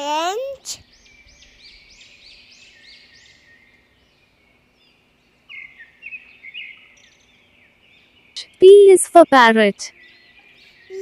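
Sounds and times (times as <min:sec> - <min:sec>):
faint bird chirps: 0:00.6 - 0:11.0.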